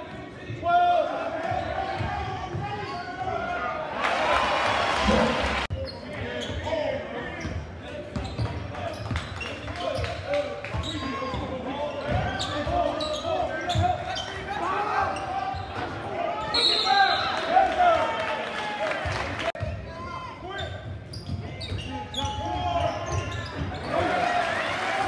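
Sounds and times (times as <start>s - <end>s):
crowd voices and shouts: 0.0s - 25.0s.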